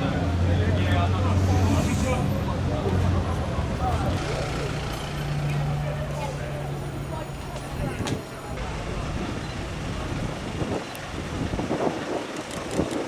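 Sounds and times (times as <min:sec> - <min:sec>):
street chatter: 0:00.0 - 0:13.0.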